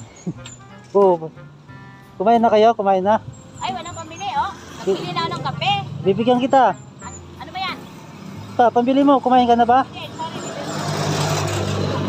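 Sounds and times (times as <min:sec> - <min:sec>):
road noise rushing: 0:00.0 - 0:12.0
vehicle engine hum: 0:00.0 - 0:12.0.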